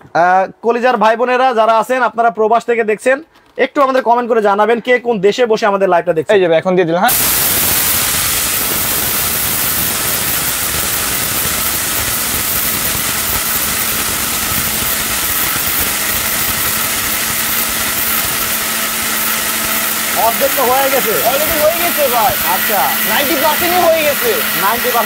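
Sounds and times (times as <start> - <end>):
mixer grinder motor whirring: 7.1 - 25.0.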